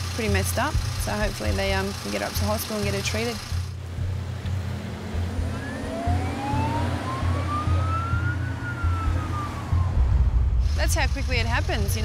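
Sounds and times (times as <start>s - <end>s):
steady low rumble: 0.0s - 12.0s
ambulance siren wailing: 5.2s - 10.2s.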